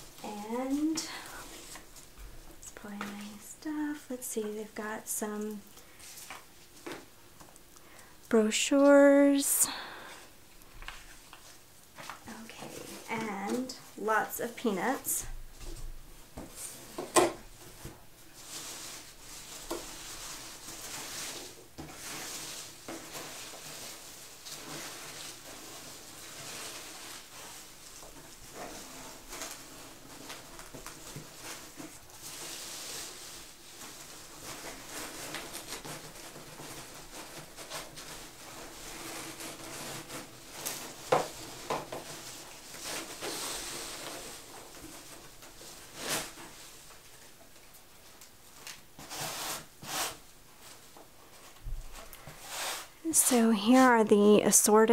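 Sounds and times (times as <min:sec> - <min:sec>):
hands rustling packing material: 0:00.0 - 0:54.0.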